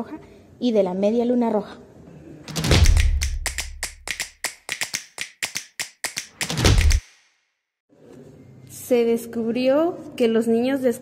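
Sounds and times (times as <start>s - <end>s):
rapid sharp clicks and taps: 2.5s - 7.3s.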